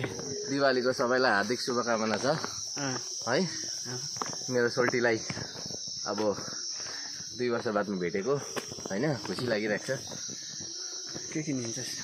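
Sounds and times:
insects droning: 0.0s - 12.0s
men talking: 0.0s - 12.0s.

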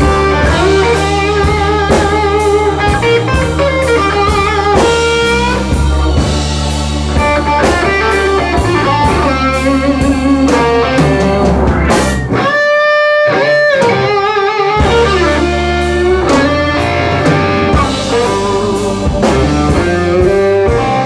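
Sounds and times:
bass and drums: 0.0s - 21.0s
electric guitar solo: 0.0s - 21.0s.

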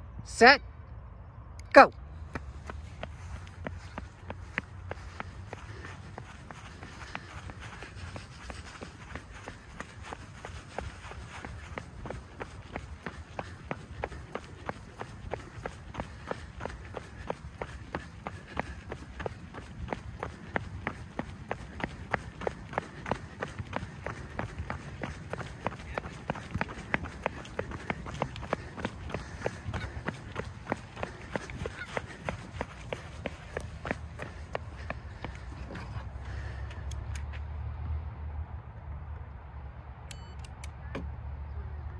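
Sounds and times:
steady low rumble: 0.0s - 39.9s
running footsteps on track: 1.9s - 39.5s.

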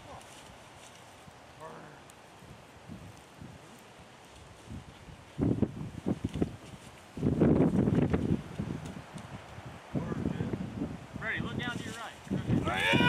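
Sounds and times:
rustling through dry grass: 0.0s - 13.0s.

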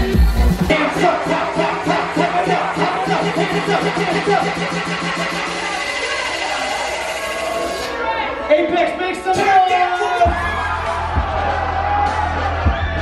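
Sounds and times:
crowd shouting and singing along: 0.0s - 13.0s
loud dance music: 0.0s - 13.0s
fast pulsing bass note: 0.7s - 7.8s.

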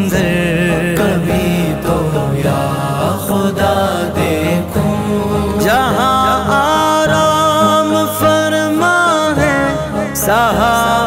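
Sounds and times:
chanted vocal drone: 0.0s - 11.0s
man singing devotional poem: 0.0s - 11.0s.

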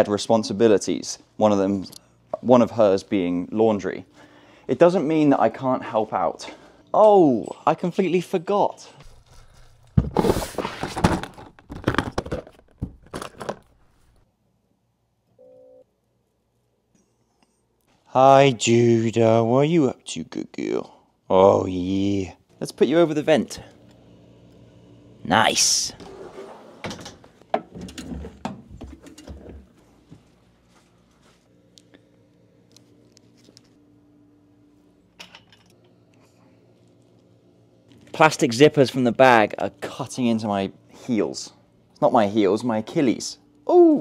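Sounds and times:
laundry machine beep: 15.4s - 15.8s.

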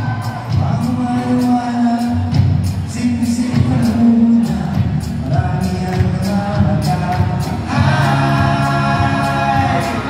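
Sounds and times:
bass guitar: 0.0s - 10.0s
drums: 0.0s - 10.0s
person singing: 0.0s - 10.0s.

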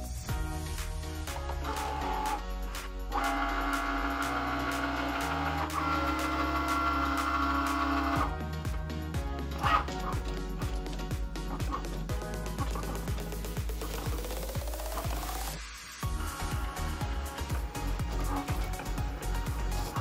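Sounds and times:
background music: 0.0s - 20.0s
cutting machine motors whining: 3.1s - 8.3s.

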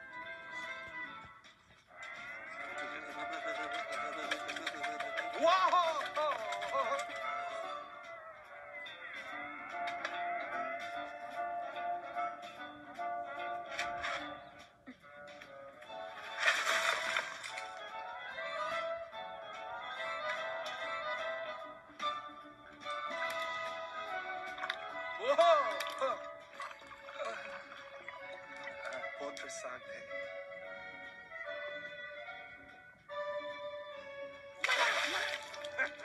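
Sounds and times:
film score music from tv speaker: 0.0s - 36.0s.

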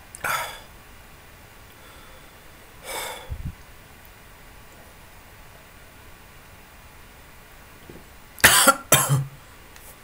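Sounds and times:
man coughing: 8.4s - 9.4s.

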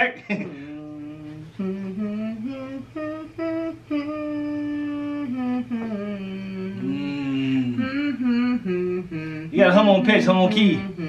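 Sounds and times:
woman humming a melody: 0.6s - 11.0s.

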